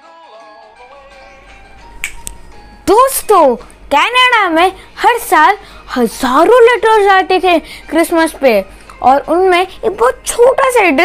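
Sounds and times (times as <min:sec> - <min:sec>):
soft background music: 0:00.0 - 0:11.0
sharp snap-like clicks: 0:02.0 - 0:02.4.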